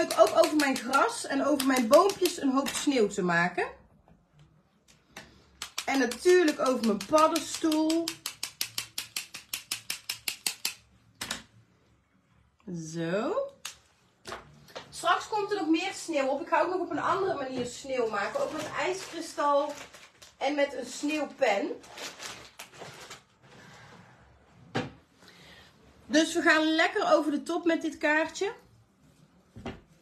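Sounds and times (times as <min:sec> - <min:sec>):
rapid pen clicking: 0:00.0 - 0:02.9, 0:05.6 - 0:10.9.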